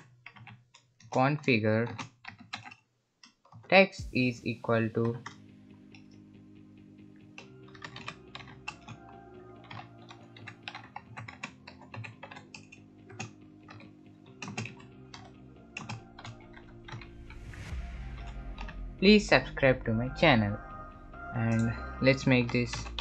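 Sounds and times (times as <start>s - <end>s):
typing on computer keyboard: 0.0s - 3.6s, 7.2s - 18.8s, 21.5s - 23.0s.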